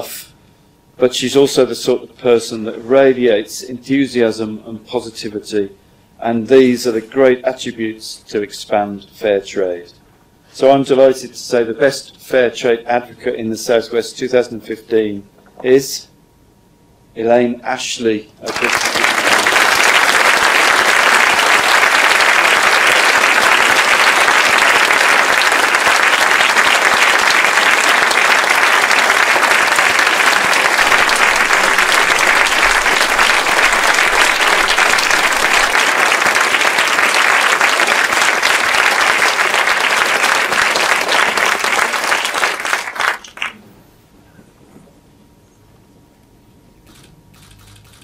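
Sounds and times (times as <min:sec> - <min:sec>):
audience applauding: 0:18.5 - 0:43.6.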